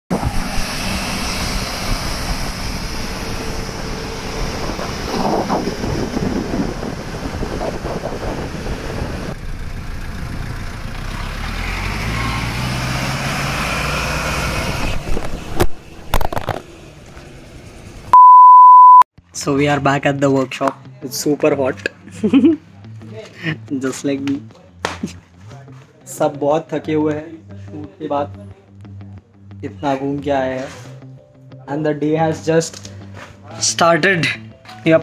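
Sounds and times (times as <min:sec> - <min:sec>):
road and wind noise: 0:00.1 - 0:18.2
jeep engine driving past: 0:09.3 - 0:14.8.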